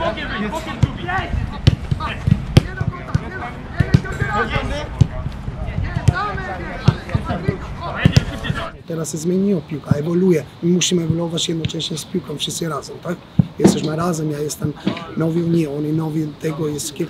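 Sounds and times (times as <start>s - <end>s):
footballs being kicked: 0.8s - 8.4s.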